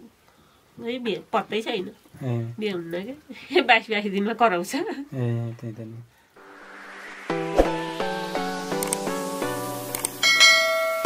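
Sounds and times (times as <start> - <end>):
music of short repeated notes: 6.4 - 11.0
click: 8.8 - 9.1, 9.9 - 10.2
bell chime: 10.2 - 11.0.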